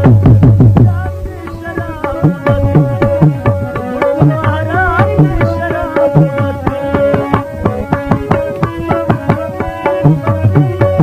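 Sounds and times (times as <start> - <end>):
tabla playing quick rhythm: 0.0 - 11.0.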